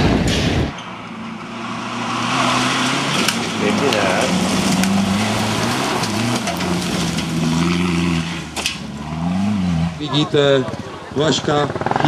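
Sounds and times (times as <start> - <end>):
gravel rattling under tyres: 0.0 - 12.0.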